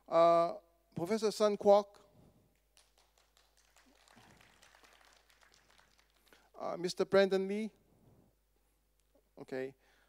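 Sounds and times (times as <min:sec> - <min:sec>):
faint scattered clapping: 0:02.5 - 0:06.6.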